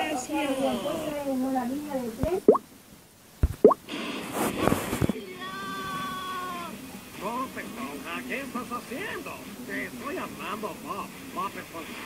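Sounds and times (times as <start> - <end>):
cartoon thump: 3.4 - 3.8.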